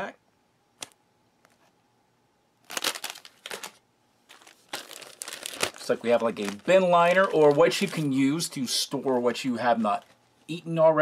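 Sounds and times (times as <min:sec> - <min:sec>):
plastic bag crinkling: 0:02.6 - 0:10.2.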